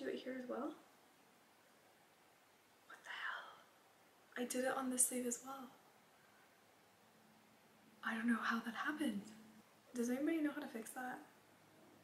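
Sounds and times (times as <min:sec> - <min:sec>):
woman whispering: 0:02.9 - 0:03.7.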